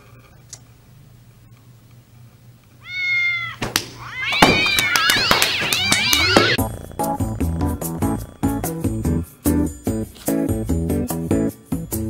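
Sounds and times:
cat meowing: 2.8 - 6.6
cat yowling: 2.8 - 6.7
music with steady beat: 6.6 - 12.0.

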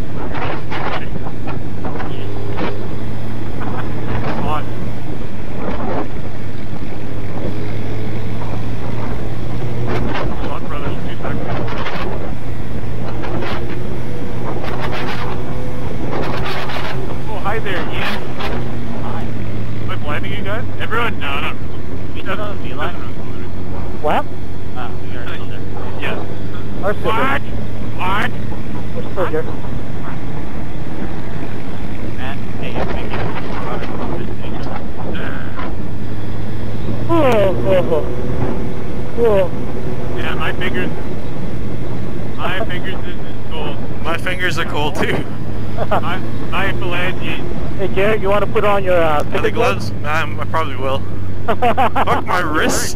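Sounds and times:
motorcycle engine cruising: 0.0 - 52.9.

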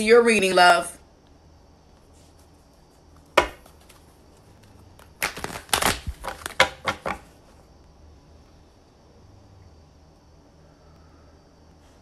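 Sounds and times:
cards being shuffled: 3.2 - 7.2.

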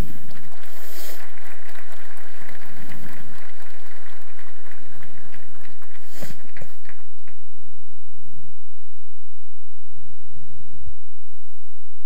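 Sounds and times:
audience applauding: 0.0 - 7.4.

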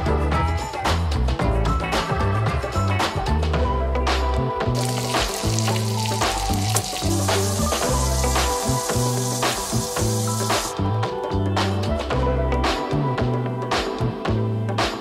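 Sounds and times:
background music with bass line: 0.0 - 15.0
meat sizzling in a pan: 4.8 - 10.7.

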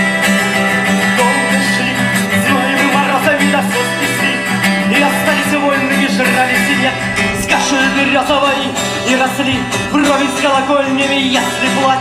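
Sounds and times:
live instrumental music: 0.0 - 12.0.

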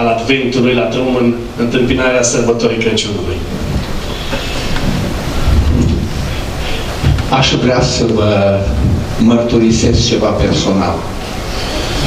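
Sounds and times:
microphone handling noise: 3.4 - 9.2.

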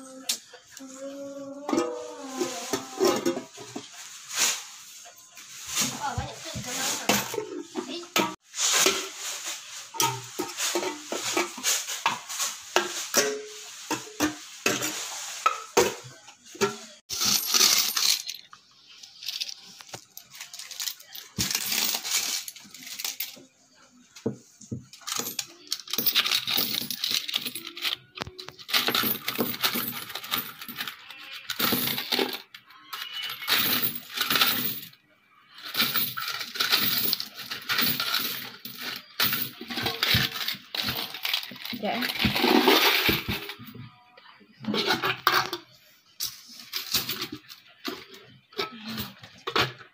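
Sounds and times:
coins rattling in tin: 17.1 - 18.5, 19.1 - 23.4, 25.0 - 35.0, 35.6 - 43.6, 46.2 - 48.1.

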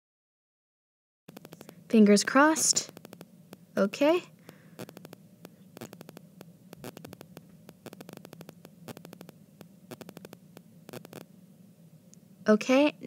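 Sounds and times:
stylus clicking on glass screen: 1.3 - 3.3, 5.8 - 11.3
low electrical hum: 1.3 - 13.0.

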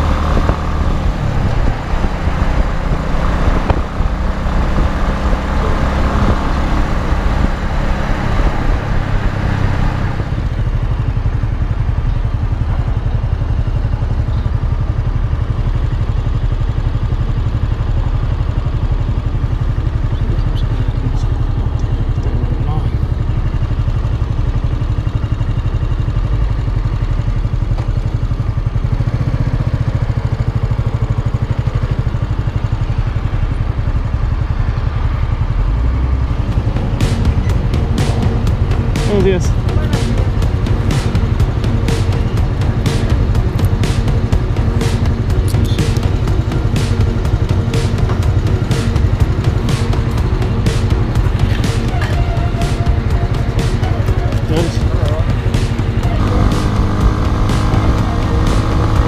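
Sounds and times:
motorcycle engine running: 0.0 - 59.0
wind and road noise: 0.0 - 59.0.

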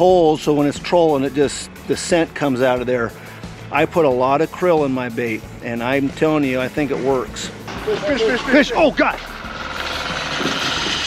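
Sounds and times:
fishing reel drag buzzing: 9.0 - 11.0.

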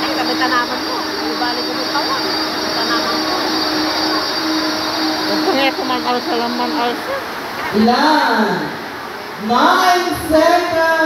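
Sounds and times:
rain hiss: 0.0 - 11.0.

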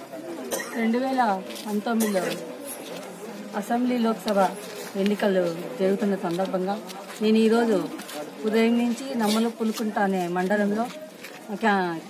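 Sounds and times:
woman speaking: 3.6 - 12.0.

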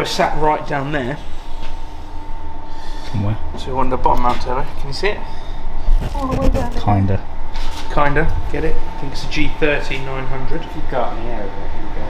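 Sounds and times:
faint high whine: 0.0 - 12.0.

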